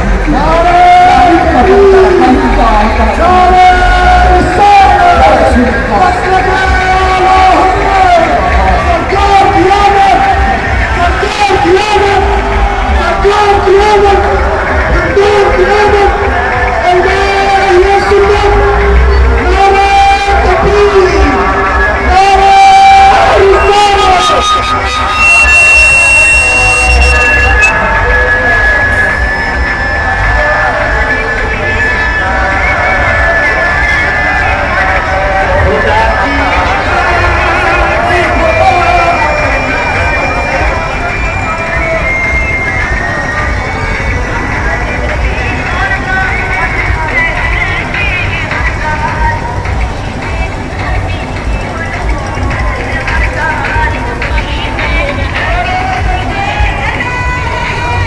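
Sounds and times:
crowd noise: 0:00.0 - 0:58.0
distorted amplified music with voice: 0:00.0 - 0:58.0
long steady high tones: 0:00.0 - 0:58.0.

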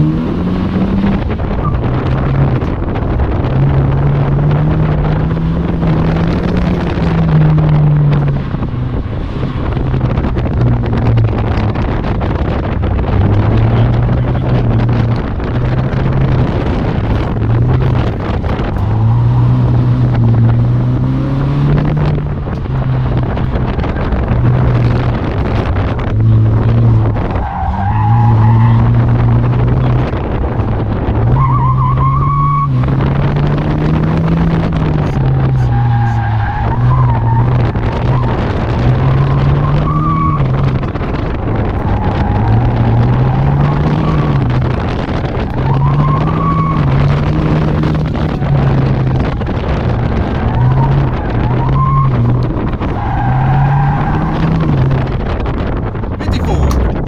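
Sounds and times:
car engine revving inside cabin: 0:00.0 - 0:57.0
tires squealing: 0:00.0 - 0:57.0.

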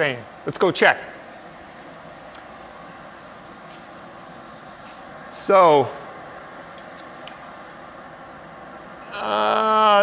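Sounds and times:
ventilation air rushing: 0:00.0 - 0:10.0.

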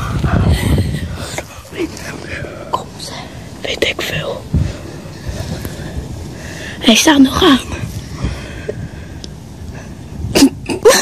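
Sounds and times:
children whispering: 0:00.0 - 0:05.4.

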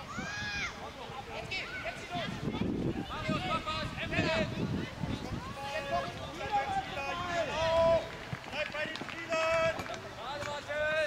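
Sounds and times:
children shouting and calling: 0:00.0 - 0:08.0.

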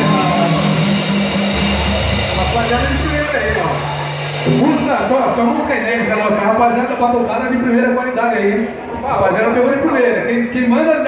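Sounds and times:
man speaking into a microphone: 0:02.3 - 0:03.9, 0:04.5 - 0:11.0.

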